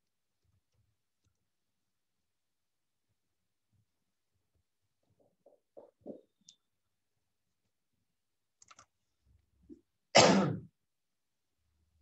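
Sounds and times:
person coughing: 0:10.2 - 0:10.7.

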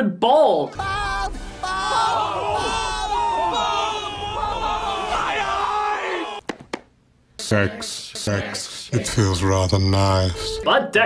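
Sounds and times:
crowd yelling: 0:00.7 - 0:06.4.

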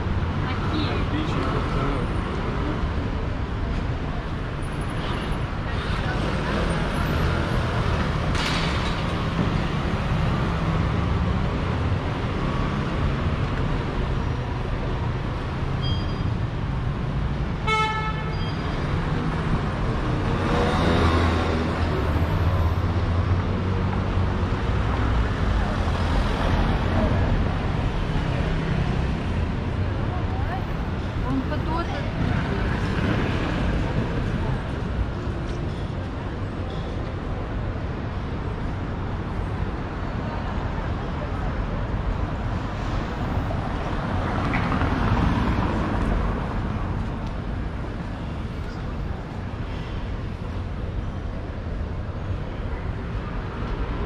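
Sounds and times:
passersby talking: 0:00.0 - 0:08.2, 0:26.6 - 0:54.0
city street traffic: 0:00.0 - 0:54.0.

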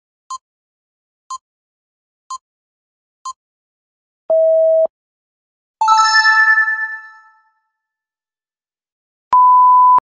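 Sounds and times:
electronic beep: 0:05.8 - 0:07.3
bright chime: 0:05.8 - 0:07.4.

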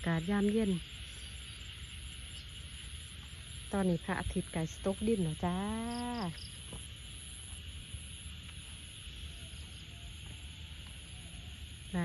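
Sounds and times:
faint frog calls: 0:00.0 - 0:12.0
frog and insect chorus hiss: 0:00.0 - 0:12.0
high pulsing insect trill: 0:00.0 - 0:12.0.

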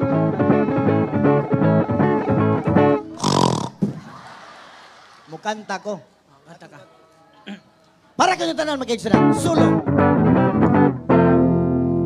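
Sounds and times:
guitar strumming chords: 0:00.0 - 0:03.2, 0:09.1 - 0:12.0.

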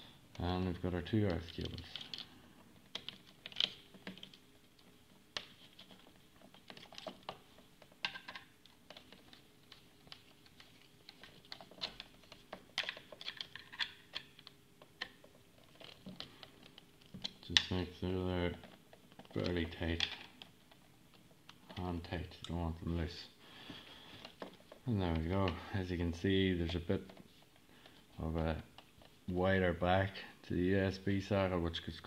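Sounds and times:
light clicks and taps of wires: 0:00.3 - 0:22.6.

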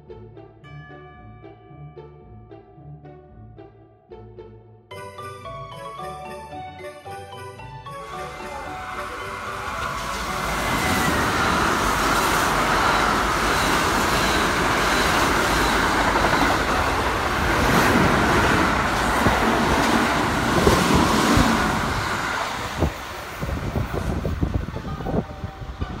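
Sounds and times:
train wheels rumbling: 0:07.9 - 0:26.0
wheels clacking over rail joints: 0:08.0 - 0:25.2.

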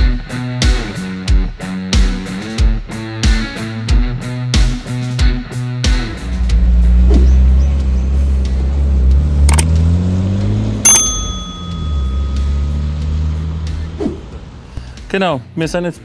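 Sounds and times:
car engine passing slowly: 0:06.0 - 0:14.8
notification bell ding: 0:10.8 - 0:13.0.

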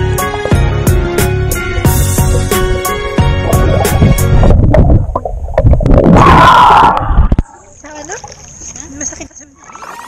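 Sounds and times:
loud background music: 0:00.0 - 0:04.6.

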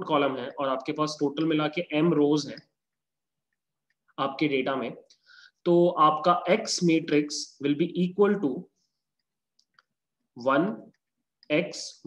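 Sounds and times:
man speaking: 0:10.4 - 0:12.0.

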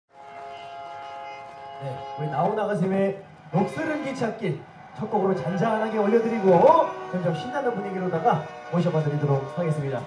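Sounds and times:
man's voice: 0:01.8 - 0:10.0.

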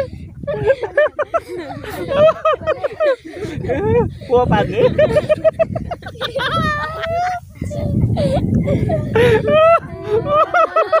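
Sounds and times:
boys and man laughing: 0:00.0 - 0:11.0.

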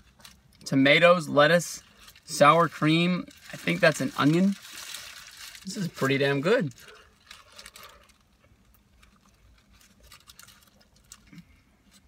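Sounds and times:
soft clicks and crunches: 0:03.2 - 0:12.0.

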